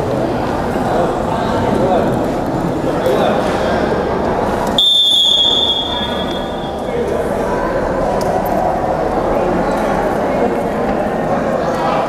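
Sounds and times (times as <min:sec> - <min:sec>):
arena crowd murmur: 0:00.0 - 0:12.0
referee's whistle blast: 0:04.8 - 0:06.8.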